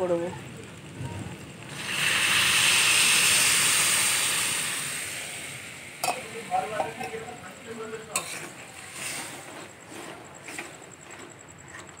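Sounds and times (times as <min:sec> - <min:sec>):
water sizzling in hot oil: 0:00.0 - 0:11.2.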